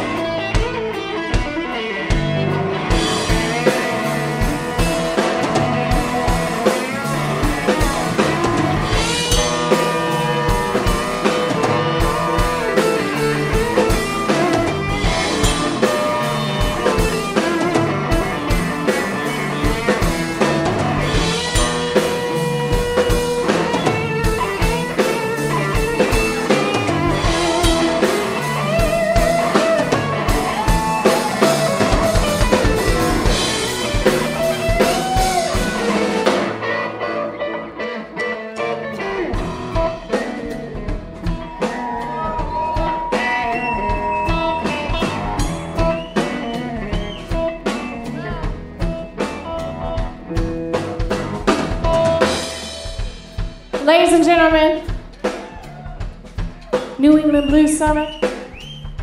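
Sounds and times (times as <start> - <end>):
bass guitar: 0.0 - 59.0
drum kit: 0.0 - 59.0
electric guitar lead: 0.0 - 59.0.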